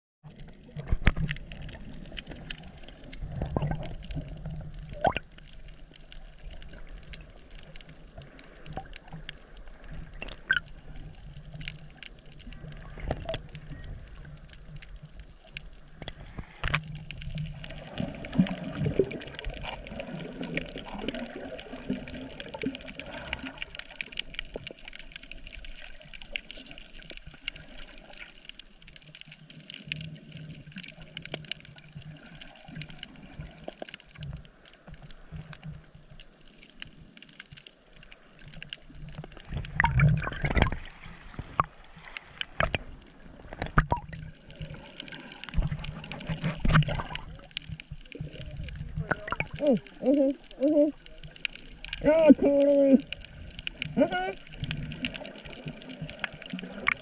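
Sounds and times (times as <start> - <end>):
muffled underwater water noise: 0.2 - 57.0
underwater crackles: 0.2 - 57.0.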